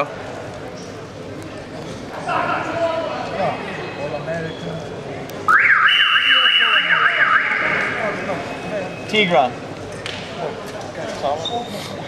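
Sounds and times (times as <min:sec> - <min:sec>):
warbling electronic alarm: 0:05.5 - 0:08.6.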